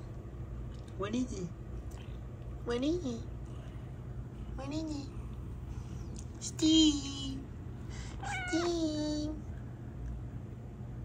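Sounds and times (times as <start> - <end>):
cat meowing: 8.2 - 9.0.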